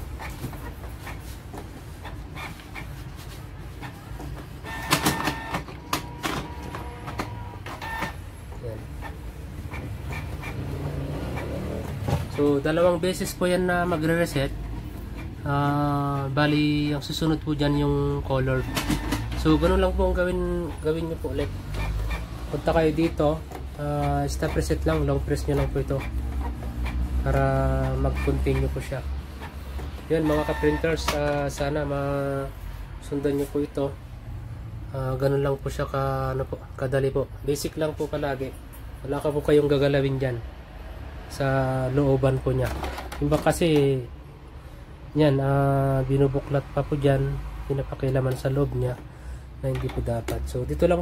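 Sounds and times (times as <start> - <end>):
printer whine: 0.0 - 13.0, 15.9 - 26.8, 27.6 - 32.2
inkjet printer motors running: 0.0 - 32.6
printer clicks: 4.6 - 8.2, 18.6 - 19.8, 30.2 - 31.5.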